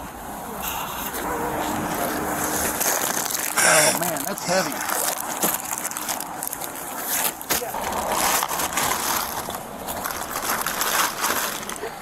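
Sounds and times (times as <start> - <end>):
roadside traffic: 0.0 - 12.0
wind: 0.0 - 12.0
packages rustling and knocking: 2.0 - 12.0.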